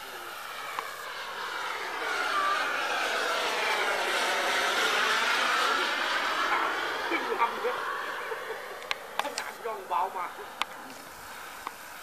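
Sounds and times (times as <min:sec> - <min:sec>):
model jet high-pitched whine: 0:00.0 - 0:12.0.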